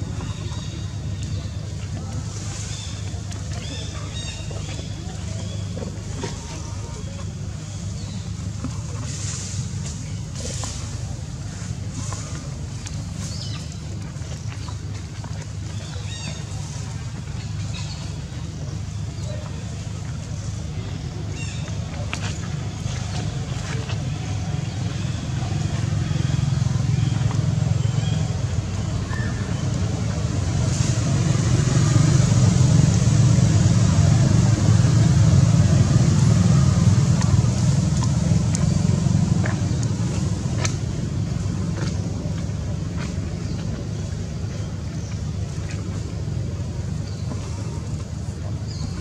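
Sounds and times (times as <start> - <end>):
low motor rumble: 0.0 - 49.0.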